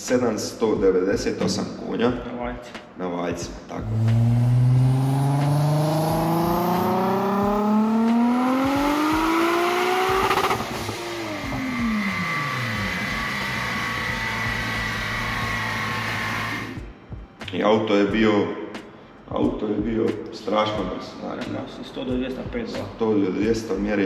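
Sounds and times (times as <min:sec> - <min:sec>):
car engine revving at full throttle: 0:03.8 - 0:16.8.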